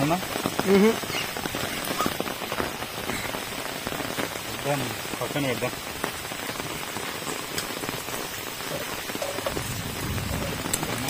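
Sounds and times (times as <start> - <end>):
heavy rain on wet ground: 0.0 - 11.0.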